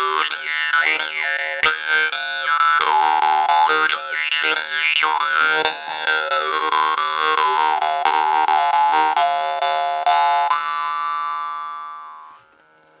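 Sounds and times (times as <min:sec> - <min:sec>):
jew's harp twanging: 0:00.0 - 0:12.8.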